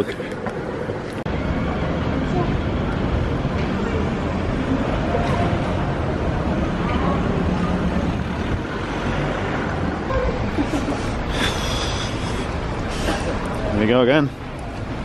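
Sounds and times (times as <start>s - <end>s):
rumble of passing traffic: 0.0s - 15.0s.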